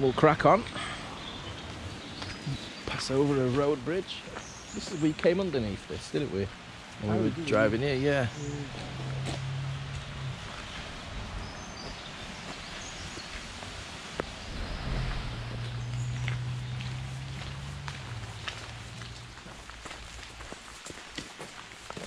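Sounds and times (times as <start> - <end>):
light rain: 0.0 - 22.0
footsteps on wet gravel: 1.6 - 5.5, 8.4 - 22.0
low hum: 14.2 - 20.5.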